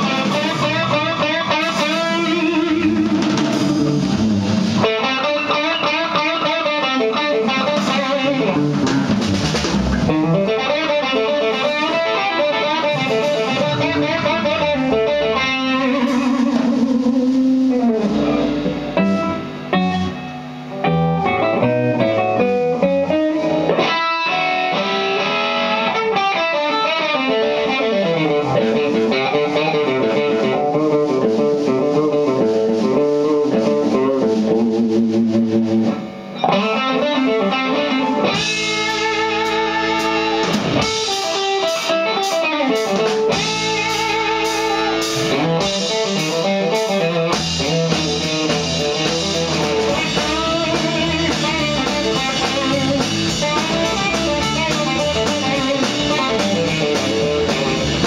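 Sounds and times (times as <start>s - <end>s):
bass guitar: 0.0s - 58.0s
drums: 0.0s - 58.0s
electric guitar lead: 0.0s - 58.0s
keyboards: 37.0s - 58.0s.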